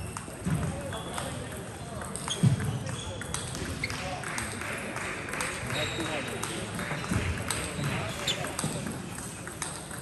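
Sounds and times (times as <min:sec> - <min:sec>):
table tennis balls clicking: 0:00.0 - 0:10.0.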